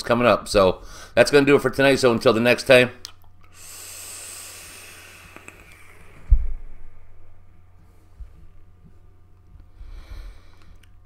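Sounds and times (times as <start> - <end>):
airy hiss of vaping draw: 3.5 - 6.3.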